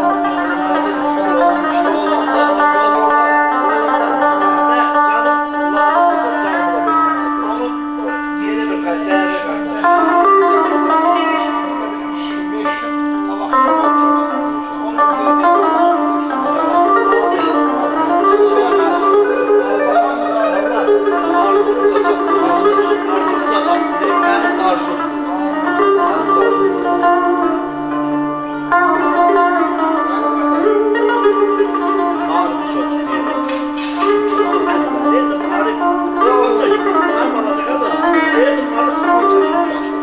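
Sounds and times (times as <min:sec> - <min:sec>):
electric guitar fast folk melody: 0:00.0 - 0:40.0.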